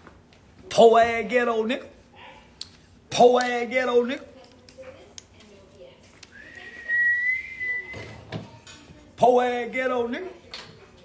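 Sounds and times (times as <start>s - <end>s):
person whistling a note: 6.4s - 8.2s.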